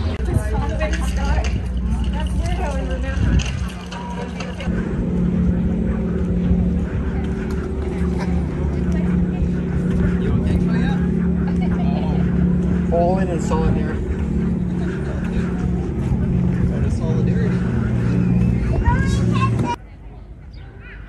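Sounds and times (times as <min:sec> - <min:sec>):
engine running steadily: 0:00.0 - 0:19.8
voices of passers-by: 0:00.0 - 0:21.0.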